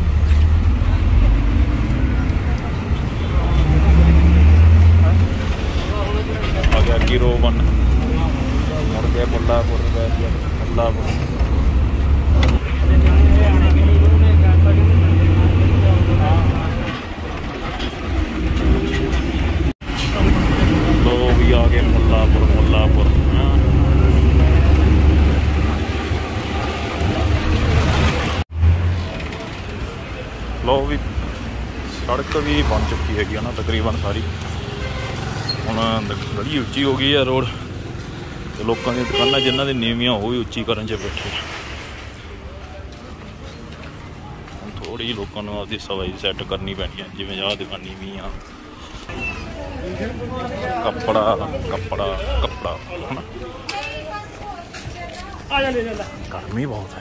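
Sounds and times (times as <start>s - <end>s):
bus engine and road rumble: 0.0s - 57.0s
voices: 29.0s - 57.0s.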